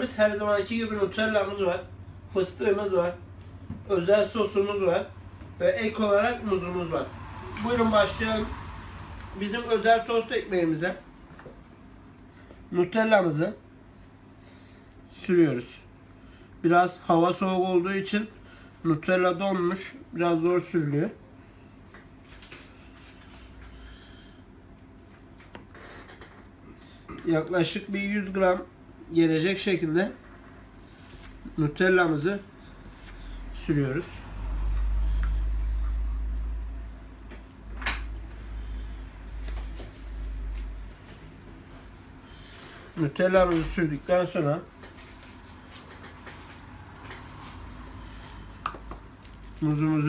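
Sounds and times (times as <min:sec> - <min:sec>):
low room hum: 0:00.0 - 0:50.0.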